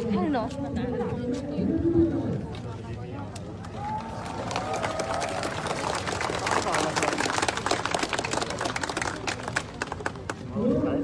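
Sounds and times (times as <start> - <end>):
people talking in a crowd: 0.0 - 11.0.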